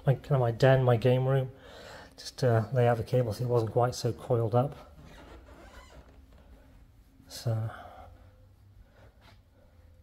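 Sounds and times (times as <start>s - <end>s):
faint rustling: 2.6s - 10.0s.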